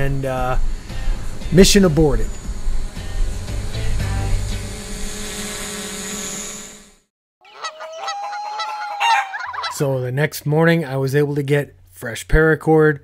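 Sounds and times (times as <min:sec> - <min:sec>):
fowl-like call: 0:07.4 - 0:09.8.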